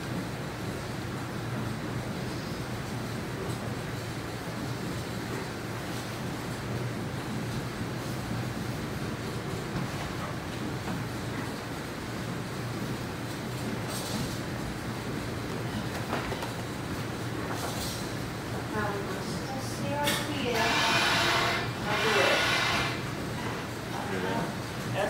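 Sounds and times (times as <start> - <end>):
gristmill grinding rumble: 0.0 - 25.0.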